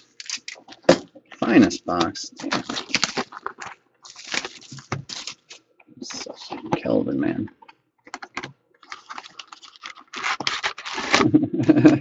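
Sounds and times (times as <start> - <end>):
plastic shrink wrap crinkling: 0.0 - 6.7, 8.4 - 11.3.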